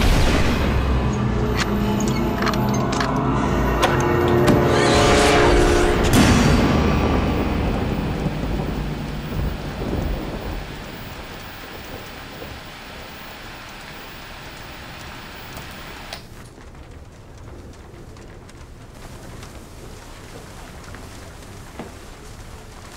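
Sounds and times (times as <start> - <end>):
deep rumble: 0.0 - 15.6
rain-like hiss: 5.0 - 22.9.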